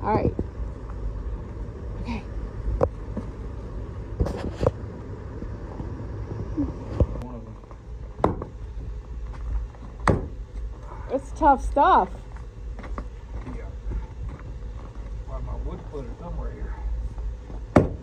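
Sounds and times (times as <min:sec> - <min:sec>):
steady low rumble: 0:00.0 - 0:18.0
splitting maul striking log: 0:17.7 - 0:18.0.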